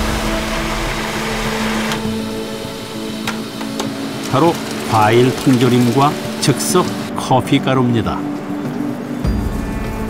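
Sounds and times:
electric blender running: 0.0 - 7.1.

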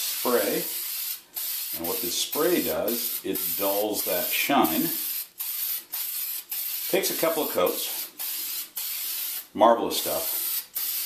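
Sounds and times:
aerosol can hissing: 0.0 - 9.5, 10.2 - 11.0.

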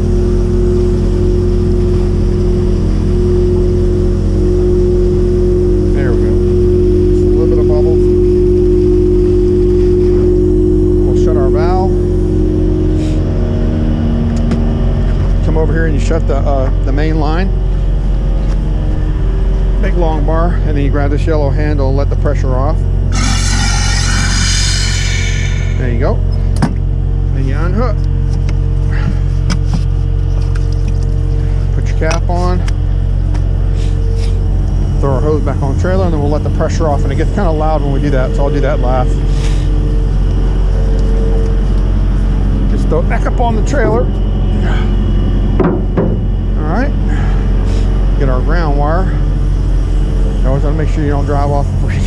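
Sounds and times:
truck engine humming: 0.0 - 20.9
truck engine droning: 0.0 - 52.0
pressurised air hissing from hose: 23.1 - 25.8.

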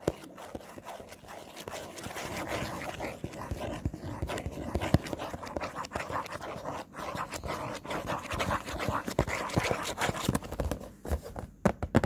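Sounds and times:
fingers scratching and tapping box: 0.0 - 10.8.

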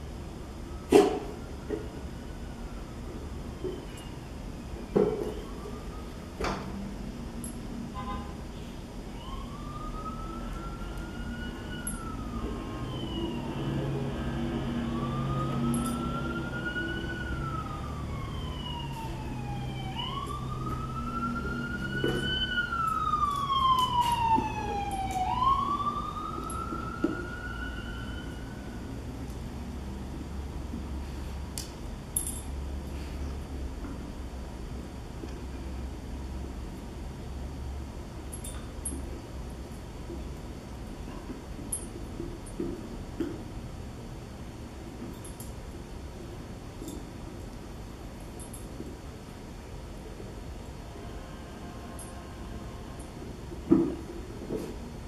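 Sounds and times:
engine rumble: 0.0 - 51.8
siren wailing: 5.1 - 6.7, 9.1 - 29.0.

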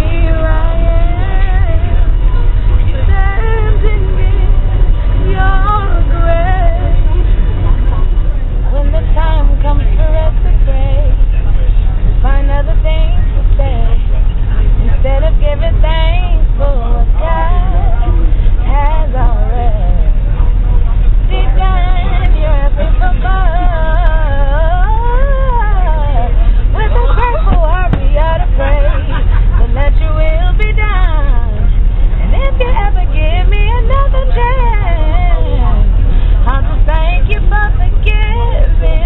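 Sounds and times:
woman singing a cappella: 0.0 - 2.2, 2.8 - 7.2, 8.7 - 11.2, 12.2 - 14.0, 15.0 - 20.2, 21.3 - 39.0
bus driving rumble: 0.0 - 39.0.

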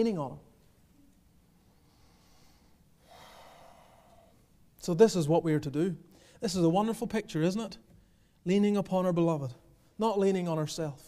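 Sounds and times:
man breathing in: 1.7 - 4.5, 6.1 - 6.4.

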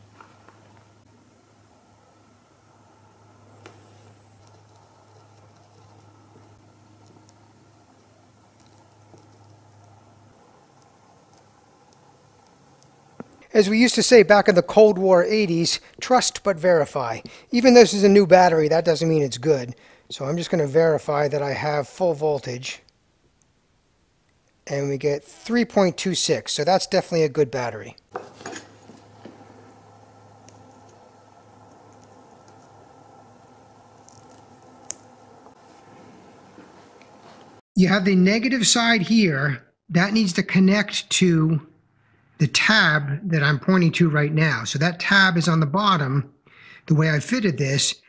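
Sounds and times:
steady low hum: 0.0 - 37.6
objects knocking on wooden workbench: 28.1 - 29.4.

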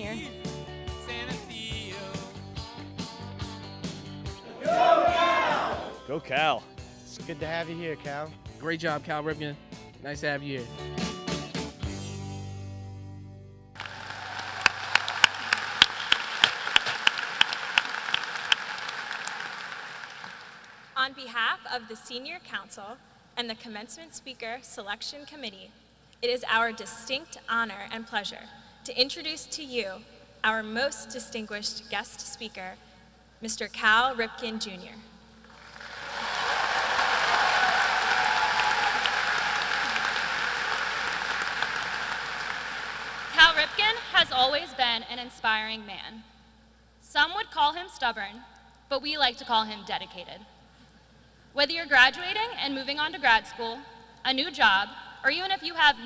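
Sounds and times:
audience applauding: 4.5 - 5.9, 13.8 - 21.0, 35.5 - 44.0
loud single claps: 13.8 - 20.9
woman speaking: 21.0 - 32.8, 33.4 - 35.1, 43.3 - 46.2, 47.0 - 50.4, 51.6 - 56.0.

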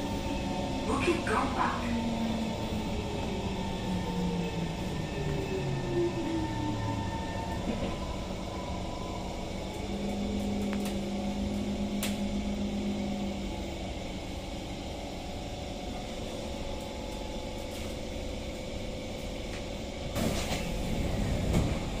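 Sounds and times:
train motors whining: 0.0 - 22.0
train doors opening: 6.2 - 12.6, 19.4 - 22.0.

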